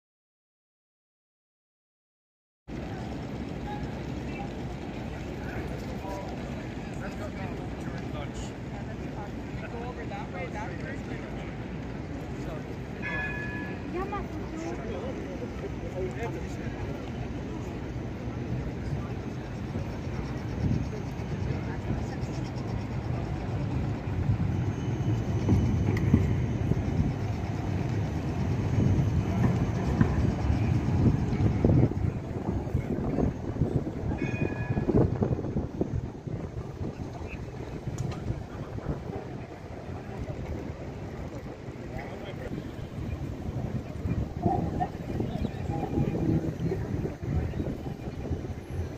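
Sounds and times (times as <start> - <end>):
tram wheels rumbling on rails: 2.7 - 48.9.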